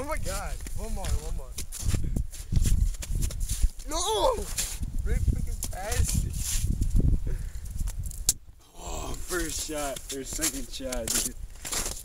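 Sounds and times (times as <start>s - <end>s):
young men's voices: 0.0s - 1.6s, 3.8s - 6.3s, 8.6s - 11.4s
wind rumble on microphone: 0.0s - 9.8s.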